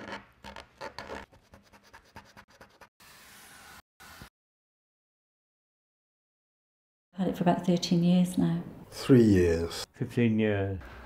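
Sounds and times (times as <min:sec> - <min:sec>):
marker scratching on card: 0:00.0 - 0:02.9.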